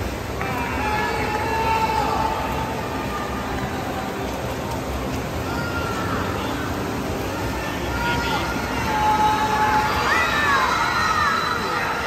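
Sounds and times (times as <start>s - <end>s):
reverberant swimming pool noise: 0.0s - 12.0s.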